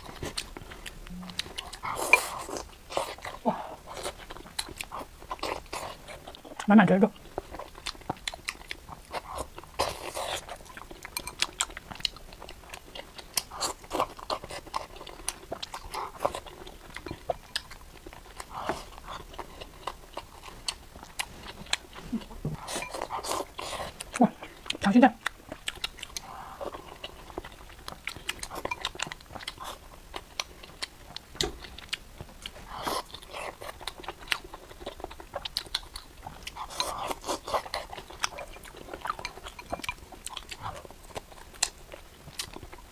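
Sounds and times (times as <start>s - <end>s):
chewing food: 0.0s - 42.9s.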